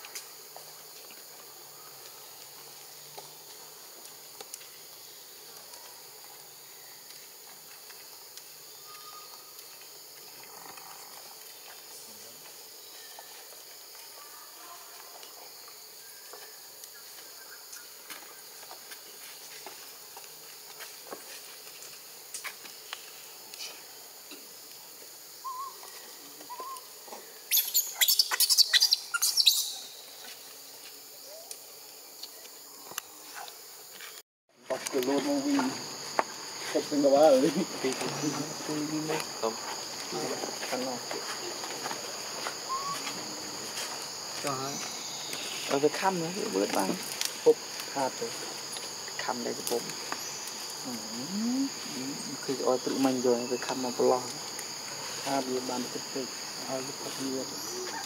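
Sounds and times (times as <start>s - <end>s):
forest insects droning: 0.0s - 58.0s.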